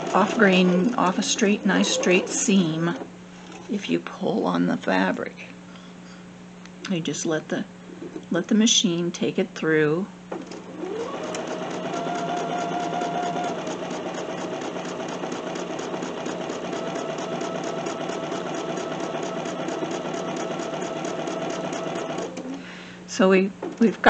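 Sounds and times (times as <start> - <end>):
sewing machine stitching: 0.0 - 3.6, 10.4 - 22.6.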